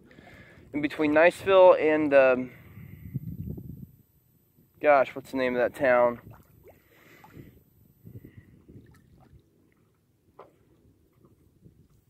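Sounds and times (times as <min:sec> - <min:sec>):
water lapping against a paddleboard: 0:08.6 - 0:12.0.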